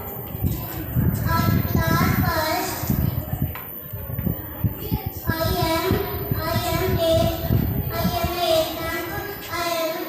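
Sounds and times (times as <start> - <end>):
boy singing into a microphone: 0.4 - 3.1, 4.7 - 10.0.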